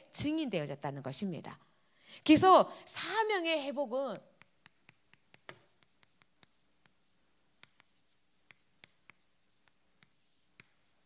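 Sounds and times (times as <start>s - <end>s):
chalk tapping and scraping on chalkboard: 4.2s - 11.0s.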